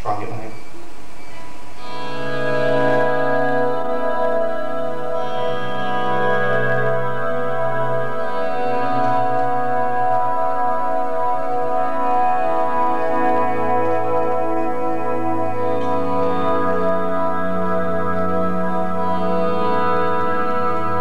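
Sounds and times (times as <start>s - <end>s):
clean electric guitar chords: 1.4s - 21.0s.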